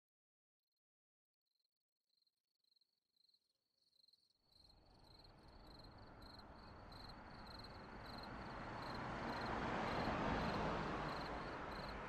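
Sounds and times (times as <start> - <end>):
faint insects chirring: 2.7 - 10.5.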